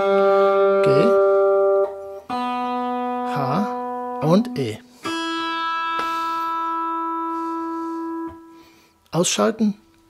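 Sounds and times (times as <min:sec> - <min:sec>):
electric guitar string ringing: 0:00.0 - 0:08.8.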